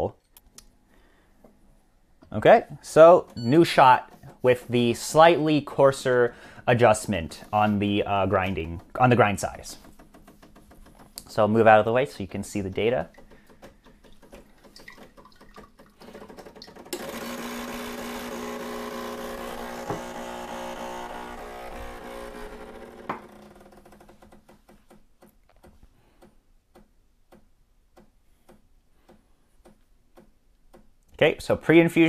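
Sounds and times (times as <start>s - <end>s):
espresso machine pump buzzing: 17.0s - 23.7s.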